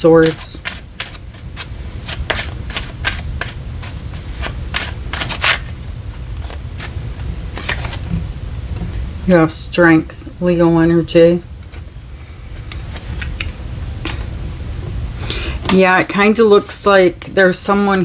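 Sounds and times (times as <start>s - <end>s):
steady low hum: 0.0s - 18.0s
cards being shuffled: 0.1s - 5.8s, 6.4s - 8.9s.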